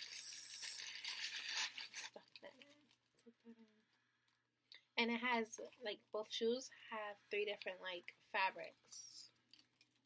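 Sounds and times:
tissue paper rustling: 0.0 - 2.6
sharp paper crackle: 0.0 - 2.8.

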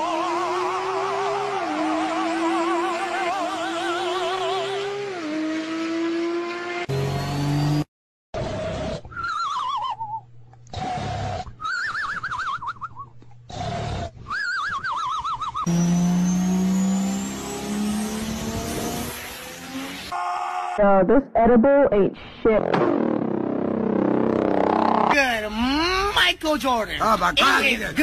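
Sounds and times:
warbling tire squeals: 0.0 - 5.3
car engine revving: 0.0 - 7.9, 15.7 - 20.2.

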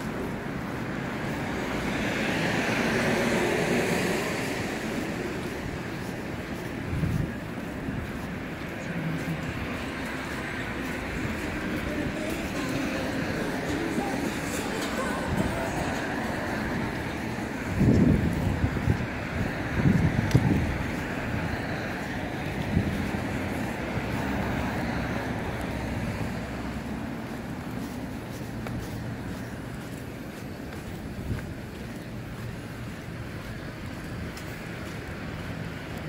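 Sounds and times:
road traffic hum: 0.0 - 36.0.

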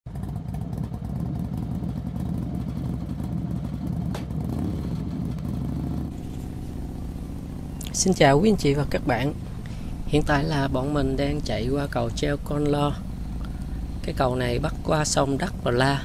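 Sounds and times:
vehicle engine running: 0.1 - 16.0.

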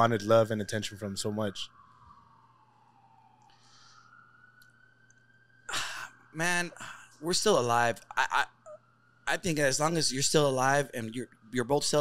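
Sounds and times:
faint siren tone: 0.0 - 12.0
man sighing: 5.7 - 7.2.

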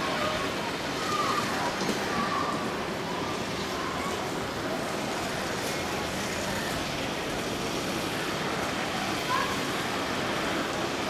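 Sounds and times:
outdoor background rush: 0.0 - 11.0.

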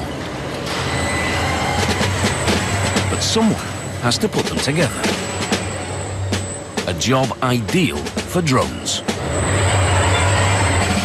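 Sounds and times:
machinery humming: 0.0 - 11.0.

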